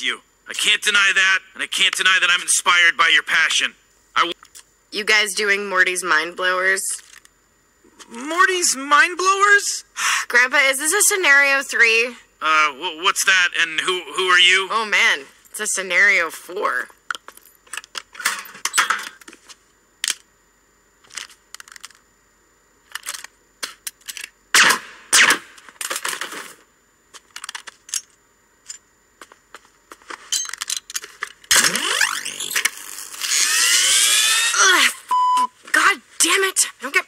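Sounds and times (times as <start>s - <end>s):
steady beep: 35.1s - 35.6s.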